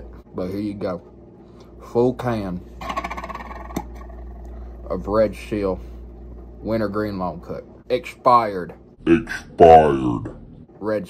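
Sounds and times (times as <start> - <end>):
steady low hum: 0.0 - 11.0
man mumbling creakily: 9.0 - 10.4.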